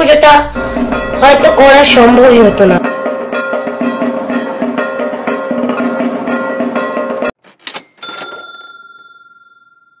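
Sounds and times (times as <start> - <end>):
bell-like ding: 2.9 - 10.0.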